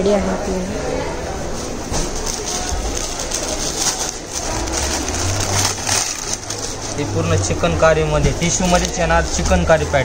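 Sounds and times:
silk and plastic wrapping crinkling: 2.0 - 9.7.

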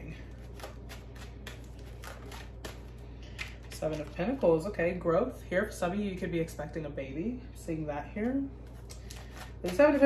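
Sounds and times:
cards being shuffled by hand: 0.3 - 4.5, 8.6 - 10.0.

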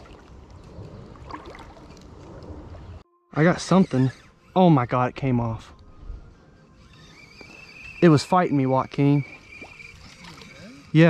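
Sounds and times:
faint water sloshing: 0.0 - 3.0, 9.4 - 11.0.

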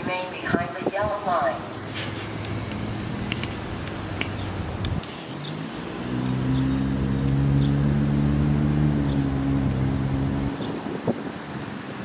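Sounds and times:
diesel locomotive engine drone: 1.6 - 10.6.

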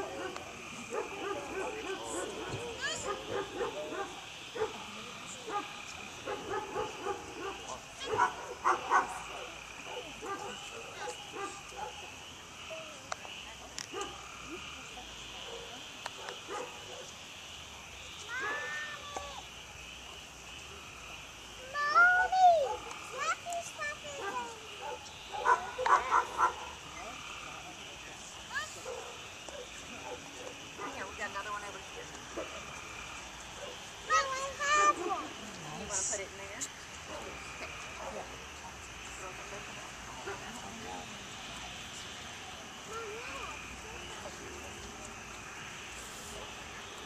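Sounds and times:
dog barking: 0.0 - 12.1, 13.9 - 14.2, 15.4 - 17.1, 18.3 - 18.8, 22.6 - 23.0, 24.1 - 26.8, 28.8 - 31.1, 33.6 - 33.8.

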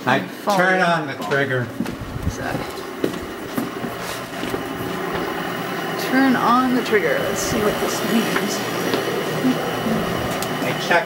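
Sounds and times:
machinery hum: 1.0 - 11.0.

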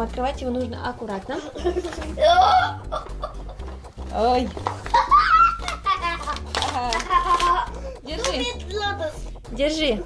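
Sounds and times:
background music with low bass: 0.0 - 10.0
child vocalising excitedly: 2.2 - 3.0, 4.9 - 6.2.

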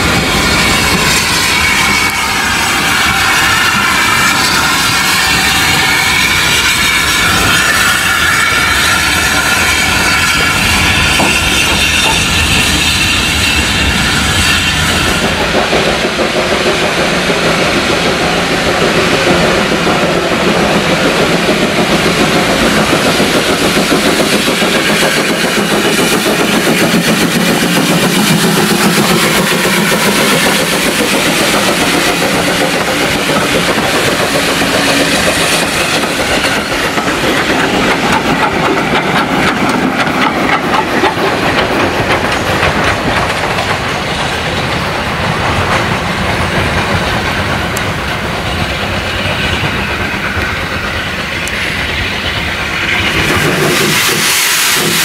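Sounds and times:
steam locomotive passing: 0.0 - 55.0
coaches clattering over rail joints: 15.0 - 55.0.

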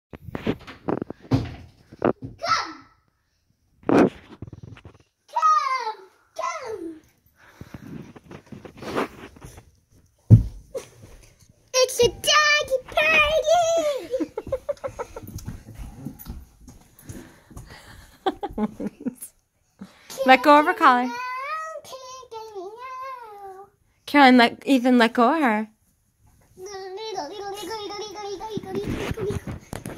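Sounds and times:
knocks and thumps: 0.2 - 2.4, 10.2 - 10.9
shuffling: 7.4 - 19.2, 26.2 - 29.9
child squealing and giggling: 13.1 - 14.3.

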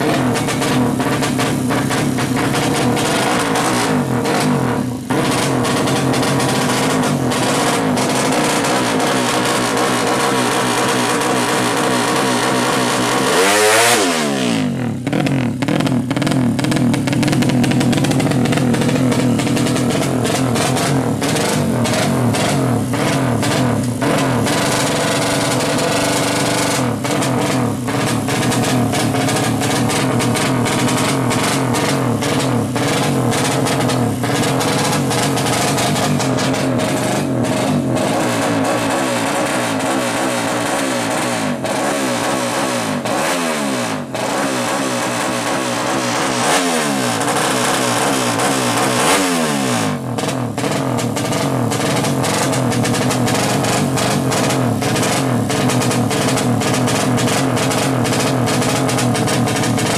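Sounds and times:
motorcycle engine revving hard: 0.0 - 59.9.

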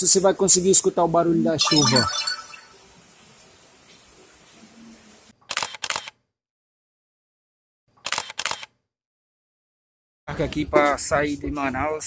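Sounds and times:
camera shutter click: 5.5 - 6.2, 8.0 - 8.7.

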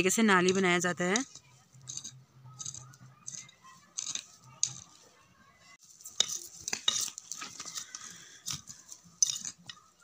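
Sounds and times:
hoe blade knocking stones: 0.0 - 5.0, 6.0 - 10.0
hand hoe scraping soil: 5.8 - 10.0.

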